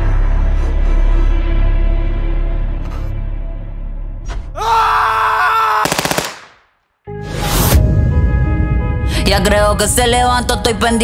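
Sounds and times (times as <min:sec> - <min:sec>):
rapid burst of sharp cracks: 0:05.8 - 0:06.7.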